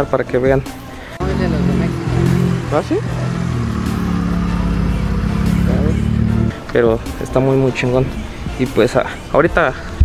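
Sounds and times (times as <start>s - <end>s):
car engine passing slowly: 1.2s - 6.7s.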